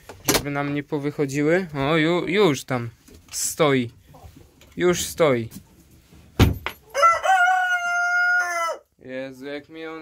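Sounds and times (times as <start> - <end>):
rooster crowing: 6.9 - 8.9.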